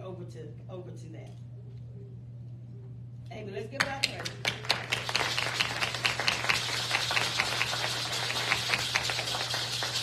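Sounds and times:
sharp nearby claps: 0:03.8 - 0:10.0
congregation applauding: 0:04.1 - 0:10.0.

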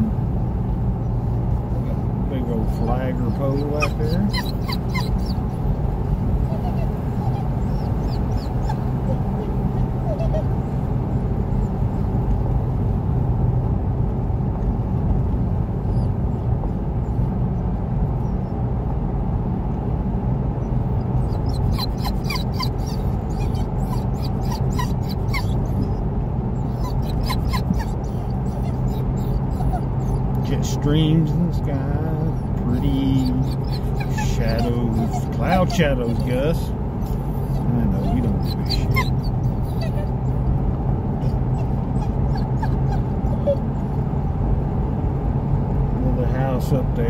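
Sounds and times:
car engine and tyre drone: 0:00.0 - 0:47.0
dog whimpering: 0:02.6 - 0:05.8, 0:06.4 - 0:12.1, 0:20.6 - 0:26.0, 0:26.6 - 0:30.3, 0:32.2 - 0:40.6, 0:41.2 - 0:43.8.

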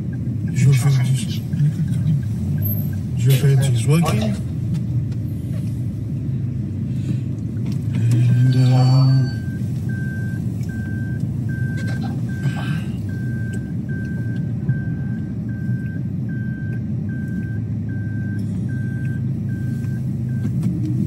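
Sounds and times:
car cabin rumble: 0:00.0 - 0:21.0
dashboard warning chime beeping: 0:08.0 - 0:20.6.

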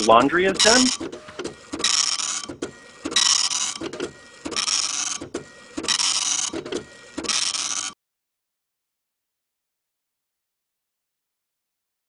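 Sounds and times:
printer clicks: 0:00.0 - 0:08.0
printer head buzzing: 0:00.0 - 0:08.0.

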